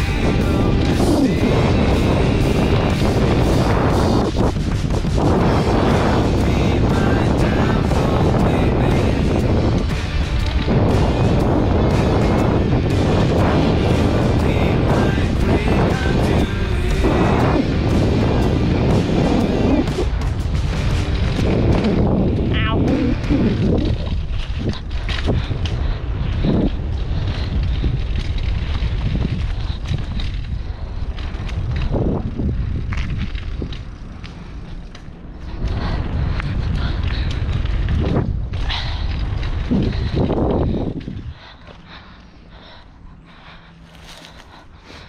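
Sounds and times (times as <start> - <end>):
bike rattling over bumps: 0.0 - 45.0
tyre rumble: 0.0 - 45.0
wind buffeting microphone: 0.0 - 45.0.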